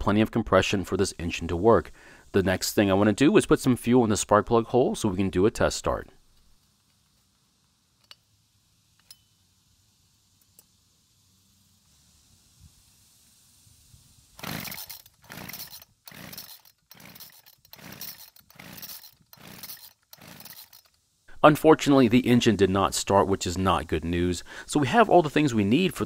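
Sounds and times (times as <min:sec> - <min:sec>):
recoil starter rope pulls: 0:14.4 - 0:21.0
string trimmer engine turning over: 0:14.4 - 0:21.0.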